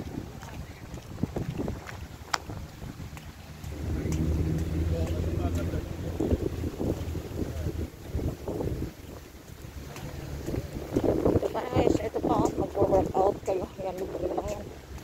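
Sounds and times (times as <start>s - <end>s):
low engine hum: 0.0s - 15.0s
wind buffeting microphone: 0.0s - 15.0s
person's voice: 11.4s - 14.7s.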